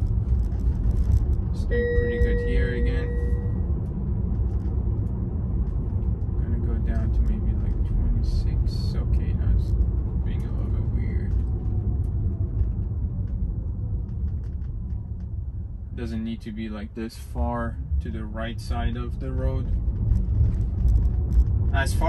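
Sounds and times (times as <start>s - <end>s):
faint falling whine: 0.0s - 5.2s
road and tyre rumble in car: 0.0s - 22.0s.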